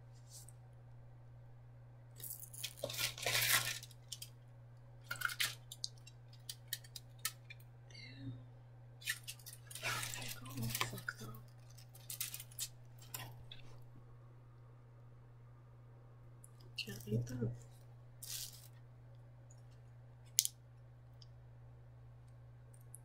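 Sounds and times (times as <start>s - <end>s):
steady low hum: 0.0s - 23.0s
styrofoam container rustling: 2.6s - 4.2s, 9.1s - 13.8s, 18.2s - 18.8s.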